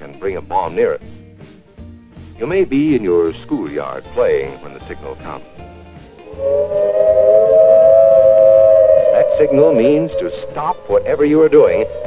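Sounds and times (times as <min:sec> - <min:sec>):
air raid siren: 0:06.2 - 0:12.0.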